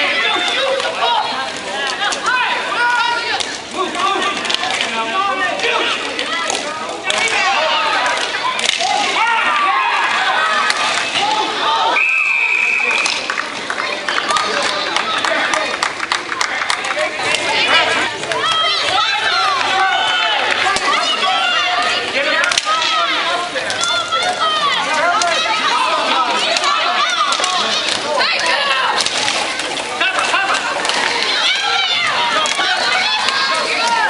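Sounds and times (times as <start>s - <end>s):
crowd shouting: 0.0s - 34.0s
hockey stick hitting puck: 8.1s - 9.1s, 22.4s - 23.0s, 26.4s - 31.7s, 32.3s - 34.0s
sharp crack: 8.1s - 9.2s, 22.4s - 23.0s, 26.5s - 31.4s.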